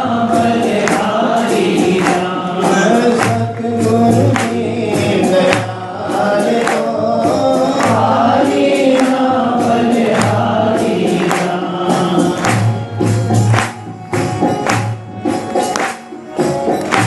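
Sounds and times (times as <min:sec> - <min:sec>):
voices singing devotional song: 0:00.0 - 0:13.8
percussion striking: 0:00.0 - 0:17.0.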